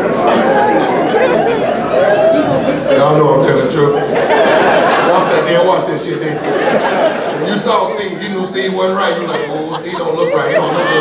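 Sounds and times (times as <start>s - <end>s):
audience chatter: 0.0s - 11.0s
man talking at microphone: 2.9s - 4.2s, 5.0s - 6.5s, 7.4s - 11.0s.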